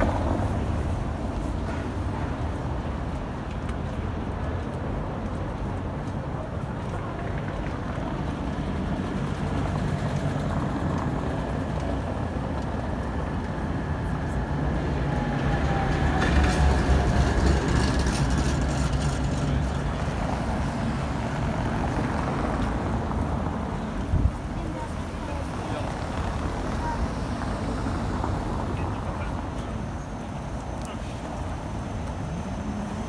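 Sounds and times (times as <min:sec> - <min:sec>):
vehicle rumbling on cobbles: 0:00.0 - 0:33.0.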